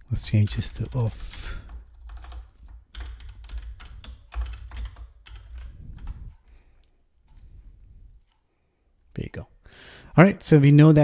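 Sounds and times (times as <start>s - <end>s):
typing on computer keyboard: 0.6s - 6.5s.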